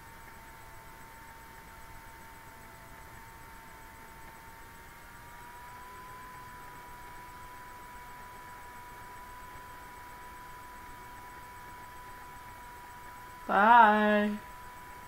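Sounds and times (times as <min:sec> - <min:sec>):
faint steady whine: 0:00.0 - 0:15.0.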